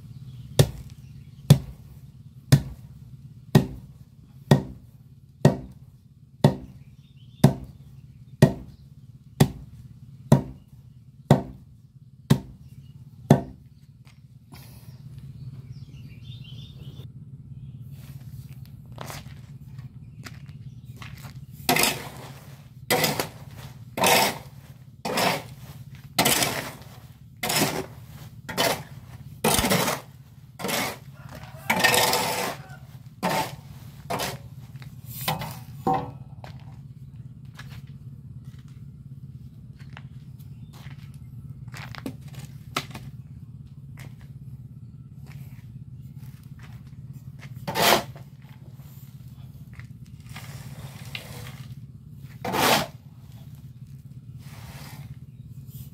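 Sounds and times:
low hum: 0:07.8 - 0:55.9
hoe blade scraping concrete: 0:21.0 - 0:36.7, 0:46.1 - 0:55.9.

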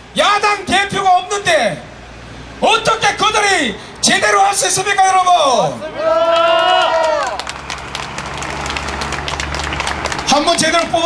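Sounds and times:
crowd clapping: 0:06.2 - 0:11.0.

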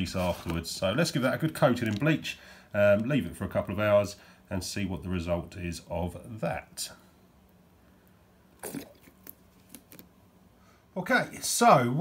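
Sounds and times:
squeeze bottle squelch: 0:08.6 - 0:10.1.

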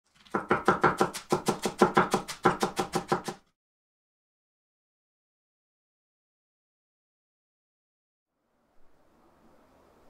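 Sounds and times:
knife chopping on cutting board: 0:00.3 - 0:03.4.

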